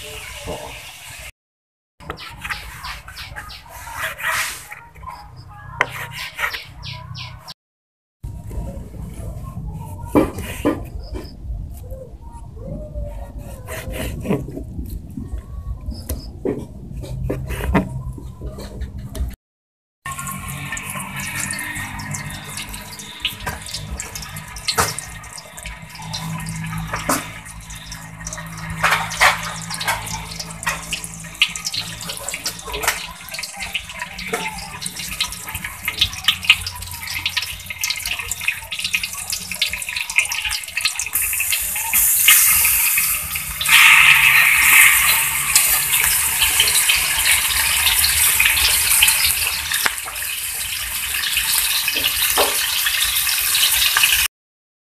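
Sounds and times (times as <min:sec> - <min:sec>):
hot oil crackling and popping: 0:20.1 - 0:54.3
meat sizzling in oil: 0:20.1 - 0:54.3.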